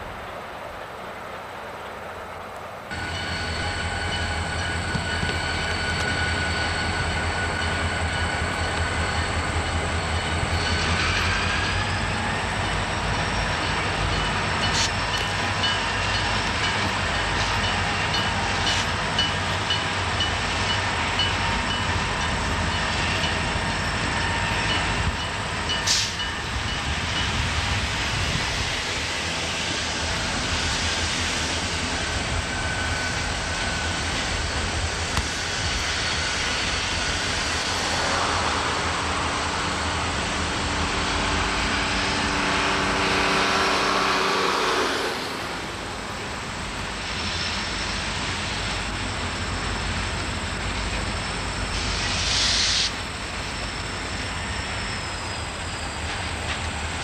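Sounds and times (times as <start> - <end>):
diesel train engine rumble: 0.0 - 57.0.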